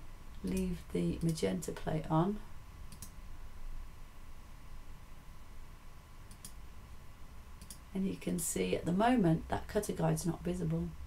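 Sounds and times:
faint computer mouse clicks: 0:02.9 - 0:03.2, 0:06.3 - 0:06.6, 0:07.6 - 0:07.8.

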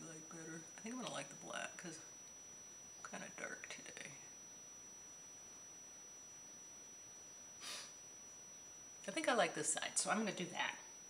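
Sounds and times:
faint hiss: 0:00.0 - 0:11.0
short soft breath: 0:07.6 - 0:08.0.

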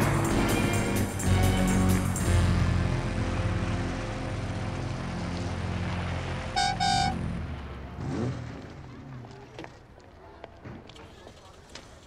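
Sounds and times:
car engine running: 0:00.0 - 0:09.0
car horn toots: 0:06.5 - 0:07.2.

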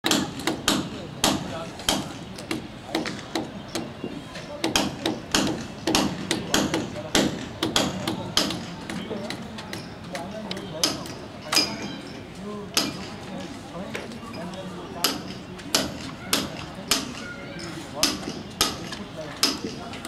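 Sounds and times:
murmur of voices: 0:00.0 - 0:20.0.

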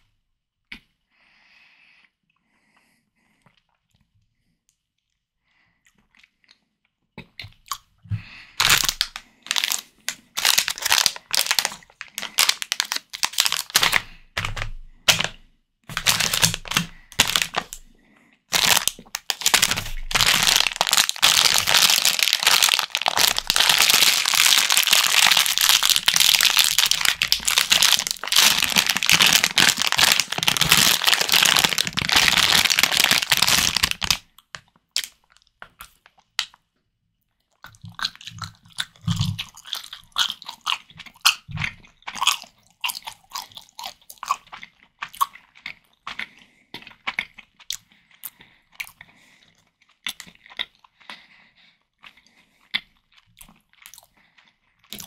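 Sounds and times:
plastic bag crinkling: 0:08.6 - 0:17.9, 0:18.5 - 0:34.3.

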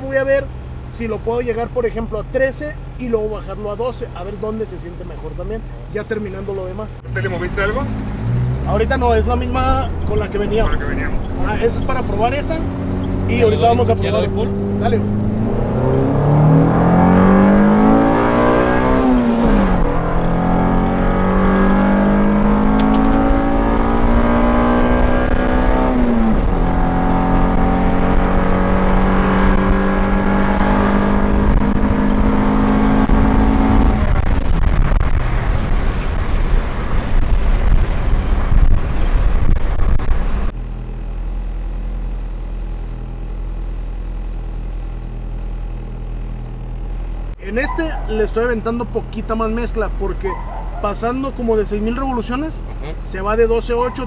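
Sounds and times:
car engine revving through gears: 0:07.0 - 0:40.5.

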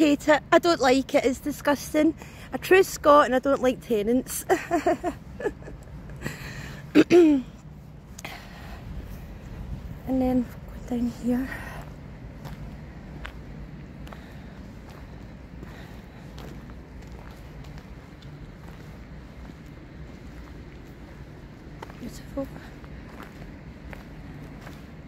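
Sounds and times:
steady low rumble: 0:00.0 - 0:25.0
footsteps on grass: 0:11.4 - 0:25.0.

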